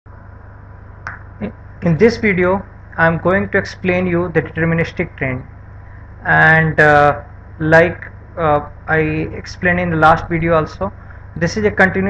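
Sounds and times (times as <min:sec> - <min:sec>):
steady low hum: 0:00.1 - 0:12.0
man speaking: 0:01.4 - 0:05.5, 0:06.2 - 0:12.0.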